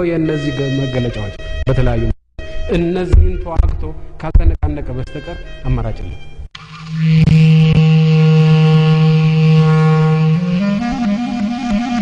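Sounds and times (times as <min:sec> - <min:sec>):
low note held on wind instrument: 0:06.8 - 0:12.0.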